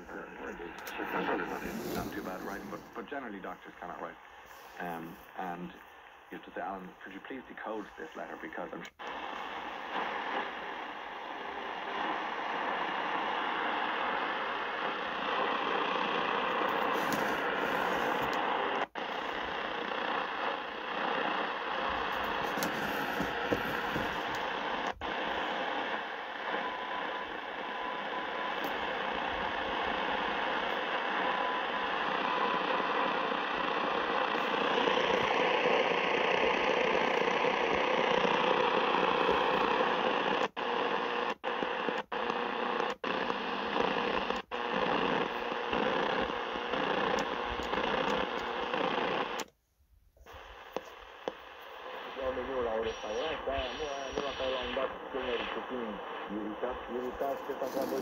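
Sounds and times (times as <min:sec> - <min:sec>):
radio static hiss: 0:00.0 - 0:49.5, 0:50.2 - 0:58.0
faint radio whistle: 0:51.8 - 0:56.3.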